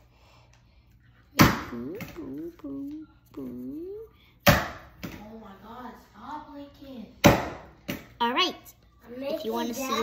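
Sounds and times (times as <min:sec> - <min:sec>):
child humming softly: 0:01.7 - 0:04.2.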